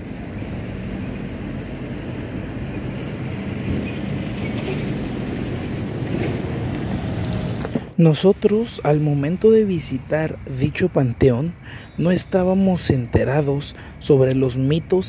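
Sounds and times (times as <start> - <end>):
low rumbling outdoor noise: 0.0 - 15.0.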